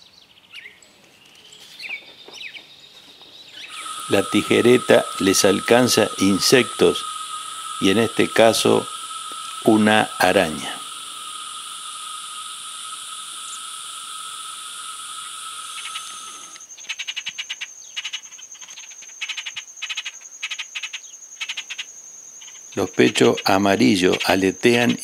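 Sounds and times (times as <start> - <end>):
birds giving harsh pulsed calls: 3.4 - 25.0
thin high whine: 3.6 - 16.7
high buzzing drone: 3.7 - 16.6.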